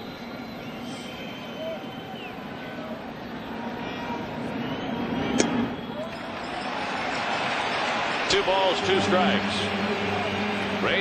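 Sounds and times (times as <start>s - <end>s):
stadium crowd murmuring: 0.7s - 11.0s.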